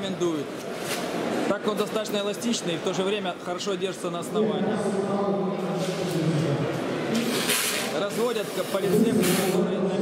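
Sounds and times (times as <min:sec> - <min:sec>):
men talking: 0:07.9 - 0:10.0.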